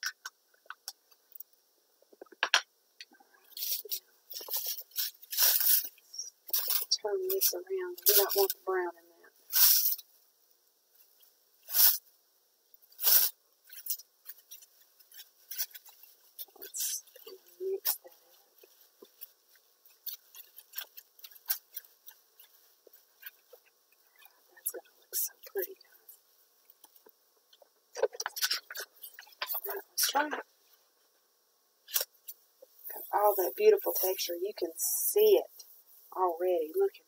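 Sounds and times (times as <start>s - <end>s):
plastic wrap crinkling: 3.5s - 8.7s, 12.8s - 30.8s, 31.9s - 37.0s.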